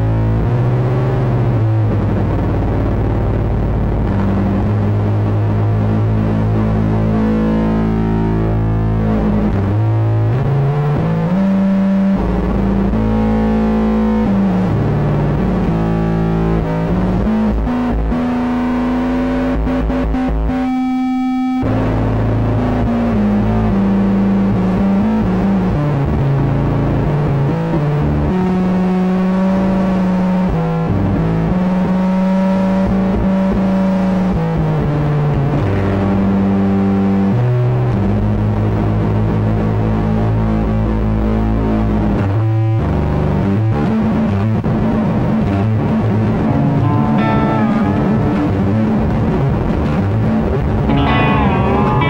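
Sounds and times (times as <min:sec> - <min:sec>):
electric bass low notes: 0:00.0 - 0:52.0
electric guitar: 0:00.0 - 0:52.0
held keyboard chord: 0:46.0 - 0:52.0
rock band playing live: 0:46.4 - 0:50.1, 0:50.8 - 0:52.0.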